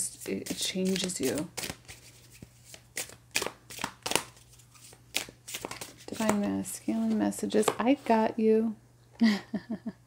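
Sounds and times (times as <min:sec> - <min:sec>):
cards being shuffled: 0:00.0 - 0:07.7.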